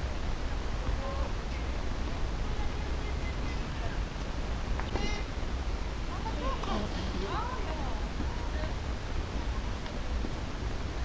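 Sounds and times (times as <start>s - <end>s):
wind rumbling on microphone: 0.0s - 11.0s.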